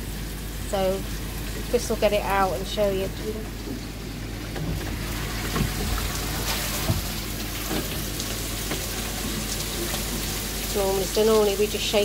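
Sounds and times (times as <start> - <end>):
water dripping: 0.0 - 12.0
water running and splashing: 0.0 - 12.0.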